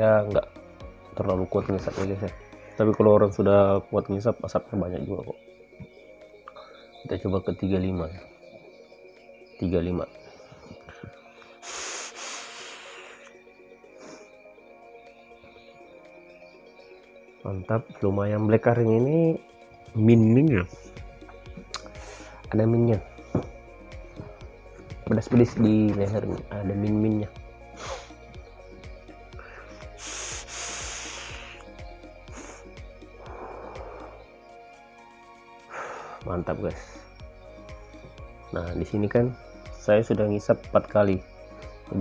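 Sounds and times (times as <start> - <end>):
background music: 0.0 - 42.0
breathy hiss of vaping: 10.8 - 14.4, 21.8 - 22.5, 27.7 - 28.3, 29.3 - 34.3, 35.6 - 36.3.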